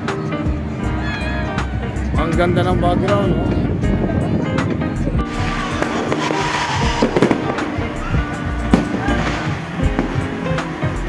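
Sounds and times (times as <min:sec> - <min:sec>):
fireworks crackling: 0:04.5 - 0:11.0
sharp firework pops: 0:05.8 - 0:07.8, 0:08.7 - 0:10.4.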